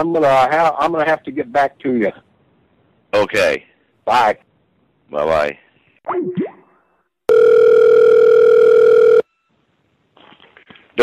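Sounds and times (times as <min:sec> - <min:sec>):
telephone line tone: 0:07.3 - 0:09.6.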